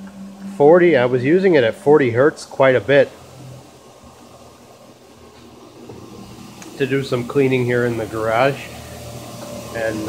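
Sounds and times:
vacuum blower low purr: 0.0 - 10.0.

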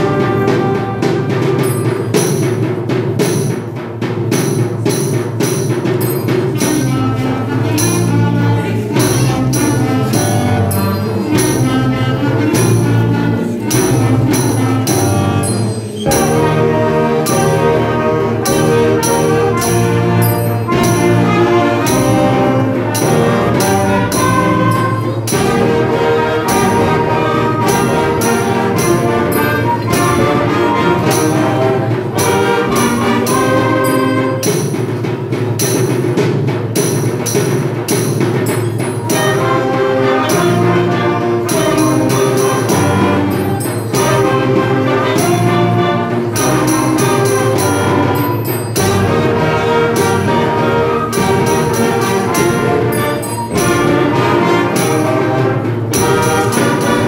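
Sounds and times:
concert band playing: 0.0 - 57.0.

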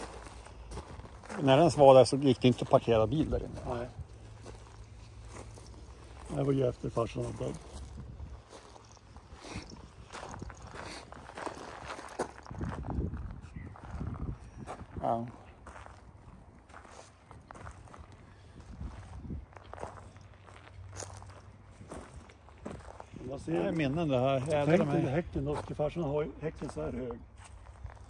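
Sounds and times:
footsteps on gravel: 0.0 - 28.0.

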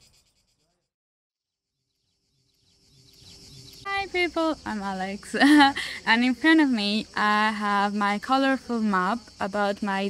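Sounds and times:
high-pitched insect chirring: 1.5 - 10.0
faint outdoor ambience: 1.8 - 10.0
woman speaking: 3.9 - 10.0.

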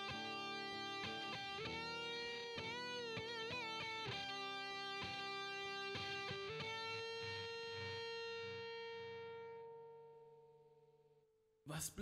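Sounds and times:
electric guitar note ringing: 0.0 - 10.7.

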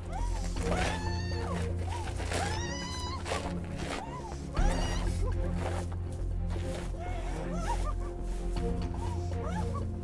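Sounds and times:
low drone of music: 0.0 - 10.0
high-pitched wailing cries: 0.1 - 1.6, 2.3 - 3.3, 4.0 - 5.2.

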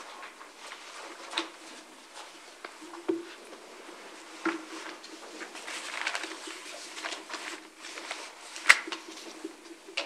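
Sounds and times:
low steady hum: 0.0 - 10.0
papers rustling: 0.0 - 10.0
small handling noises: 0.0 - 10.0.

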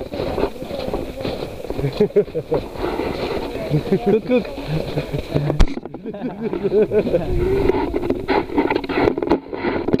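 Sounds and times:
camera jostling against clothing: 0.0 - 10.0
footsteps crunching on snow: 0.0 - 10.0.

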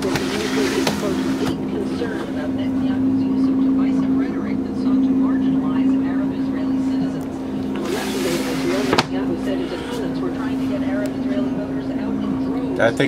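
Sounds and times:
machine droning: 0.0 - 13.0.

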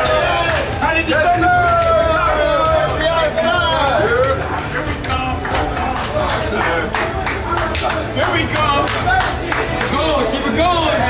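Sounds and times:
young men chattering and calling out: 0.0 - 11.0.

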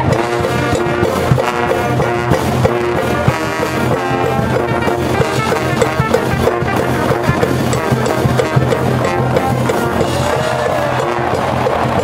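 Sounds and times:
brass playing fight song: 0.0 - 12.0
steady drum beat: 0.0 - 12.0.

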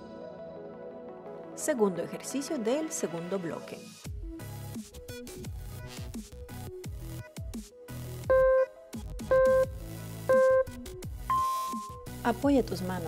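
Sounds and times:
short loud timer beeps: 8.3 - 8.7, 9.3 - 9.7, 10.3 - 10.7, 11.3 - 12.0
electronic music with steady beat: 8.3 - 12.1.

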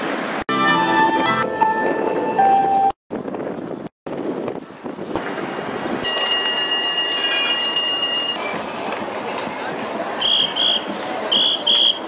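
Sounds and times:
street noise: 0.0 - 12.0
wind buffeting microphone: 3.1 - 6.0.

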